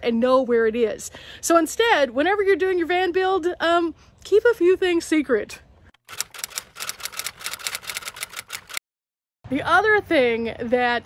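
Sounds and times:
typewriter keystrokes: 6.1s - 8.8s.

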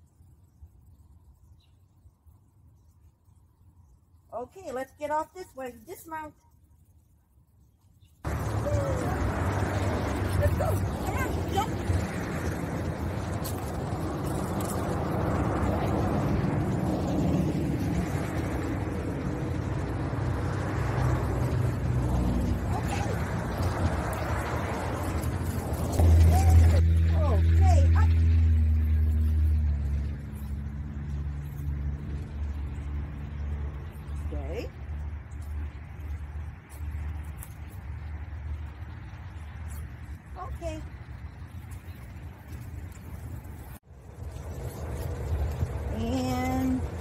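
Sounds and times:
outdoor background rumble: 0.0s - 47.0s
vehicle engine humming: 8.3s - 47.0s.

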